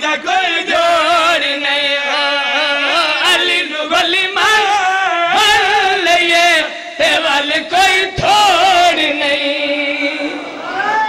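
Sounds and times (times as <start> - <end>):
man chanting through microphone: 0.0 - 10.6.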